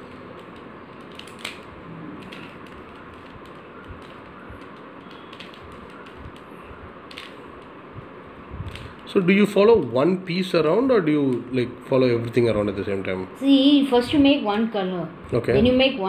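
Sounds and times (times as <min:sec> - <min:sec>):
steady hiss: 0:00.0 - 0:13.2
plastic puzzle cube clicking: 0:00.1 - 0:07.8.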